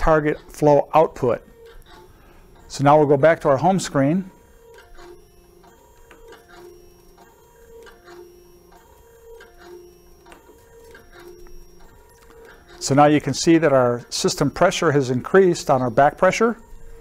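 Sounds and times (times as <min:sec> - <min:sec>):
dosing pump motor whining: 0:00.0 - 0:17.0.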